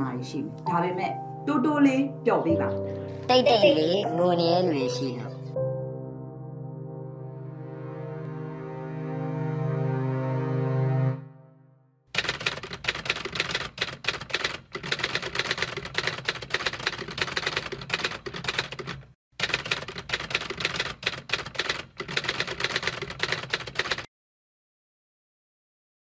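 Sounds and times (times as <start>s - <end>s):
typewriter key strikes: 12.2s - 24.1s.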